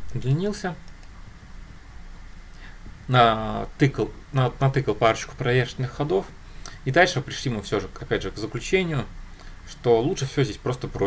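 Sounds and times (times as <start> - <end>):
faint microphone hiss: 0.0 - 11.0.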